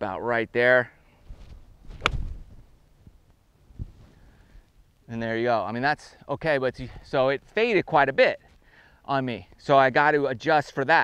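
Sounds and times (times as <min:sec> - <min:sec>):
golf club striking ball: 0:01.9 - 0:02.3.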